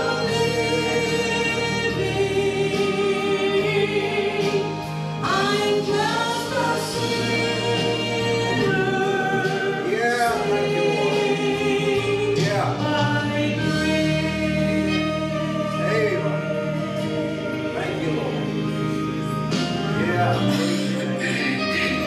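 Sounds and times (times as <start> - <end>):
woman singing gospel: 0.0 - 18.7
musical accompaniment: 0.0 - 22.0.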